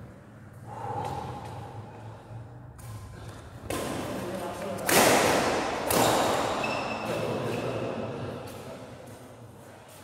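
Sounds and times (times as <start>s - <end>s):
low hall hum: 0.0s - 10.0s
racket hitting shuttlecock: 2.8s - 7.6s
shoe squeak: 6.6s - 7.7s.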